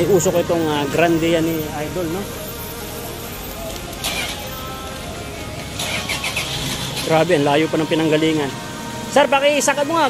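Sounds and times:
diesel engine idling: 0:00.0 - 0:10.0
faint background music: 0:00.0 - 0:10.0.

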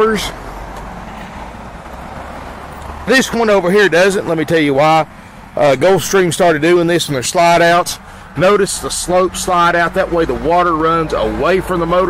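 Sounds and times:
low traffic rumble: 0:00.0 - 0:12.0
hiss of passing cars: 0:00.2 - 0:04.1, 0:05.0 - 0:06.4, 0:07.1 - 0:09.6.

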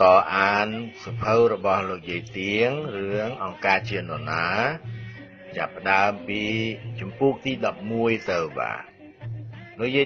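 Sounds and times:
low background music: 0:00.0 - 0:10.0
man chanting: 0:00.0 - 0:10.0.

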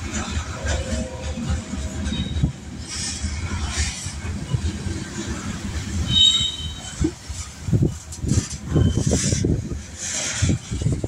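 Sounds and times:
freight train wheels rumbling: 0:00.0 - 0:11.0
high-pitched wheel squeal: 0:06.1 - 0:07.0, 0:08.6 - 0:09.5.

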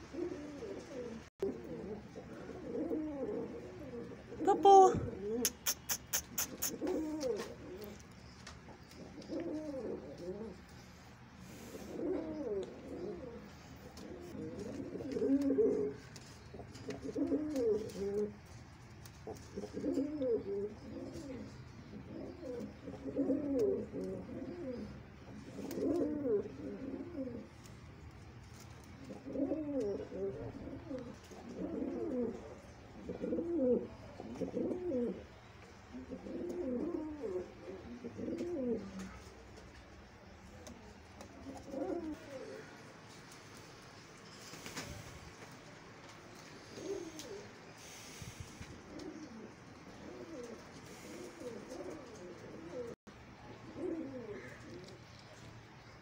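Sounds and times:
pigeon cooing: 0:00.0 - 0:27.9, 0:28.8 - 0:55.4.

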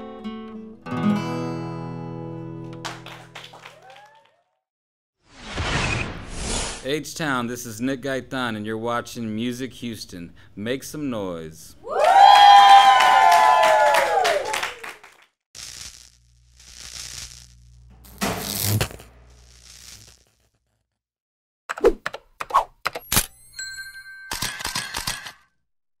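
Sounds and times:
man shouting woo: 0:03.7 - 0:04.5, 0:11.8 - 0:14.8
glitchy clicks: 0:15.6 - 0:20.6
sharp hit: 0:17.9 - 0:19.4.

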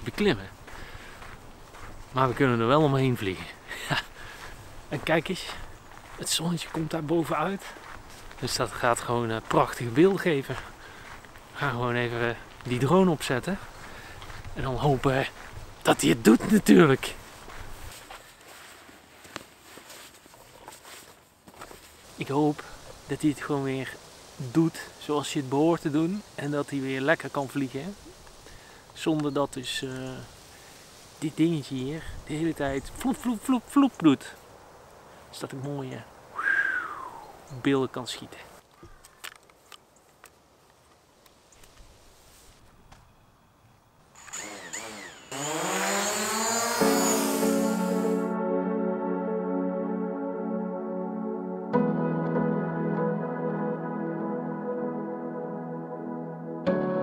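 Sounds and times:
drone propellers whirring: 0:44.2 - 0:48.3
ambient synthesizer music: 0:46.7 - 0:57.0.

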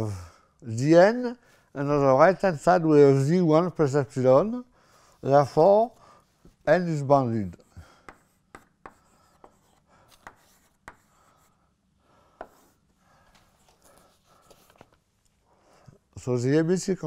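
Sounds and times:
faint chalk scratching: 0:05.0 - 0:11.6, 0:12.3 - 0:15.0
chalk tapping on blackboard: 0:08.0 - 0:11.4, 0:12.4 - 0:12.8.

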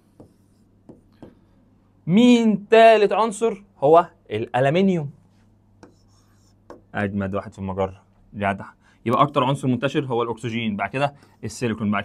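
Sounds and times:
pen strokes and taps on screen: 0:00.0 - 0:01.4, 0:05.8 - 0:06.9.

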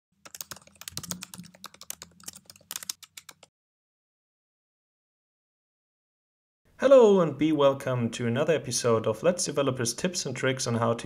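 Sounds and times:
computer keyboard typing: 0:00.2 - 0:03.5.

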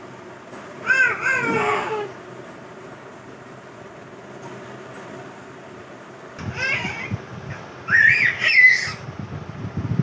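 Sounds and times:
toddler squealing: 0:00.8 - 0:02.1, 0:06.5 - 0:07.2, 0:07.9 - 0:09.0.

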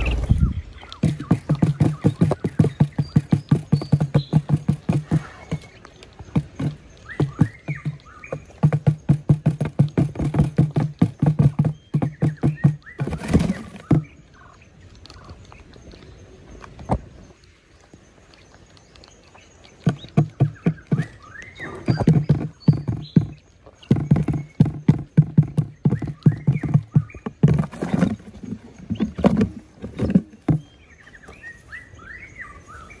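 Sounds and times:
short bird chirps: 0:00.0 - 0:01.4
quails pecking on hollow lid: 0:00.0 - 0:15.4.

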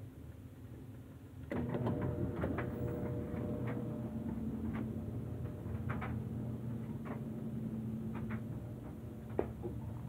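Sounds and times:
clothes dryer humming: 0:01.4 - 0:10.0.

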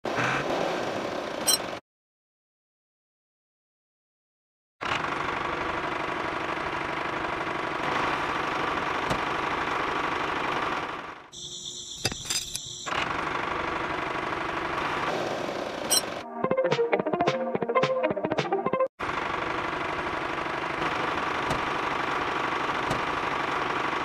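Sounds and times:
toy motor and gears rattling: 0:11.7 - 0:13.2.

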